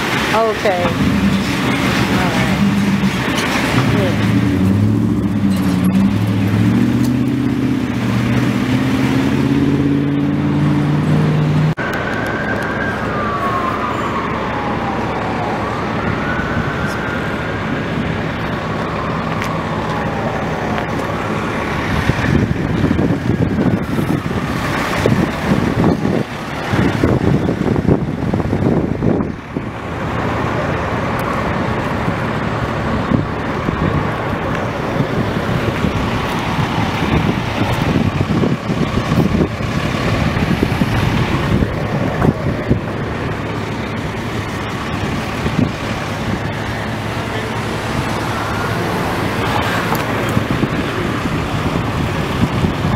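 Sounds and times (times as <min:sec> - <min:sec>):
road traffic rumbling: 0:00.0 - 0:52.9
siren wailing faintly: 0:11.8 - 0:21.2.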